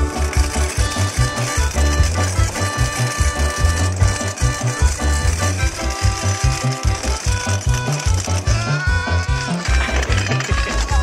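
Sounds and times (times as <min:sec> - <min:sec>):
music with pulsing bass line: 0:00.0 - 0:11.0.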